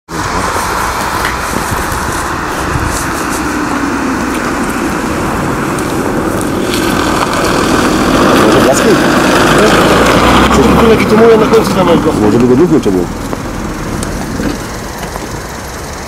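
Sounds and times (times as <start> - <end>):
car on wet slushy road: 0.1 - 16.0.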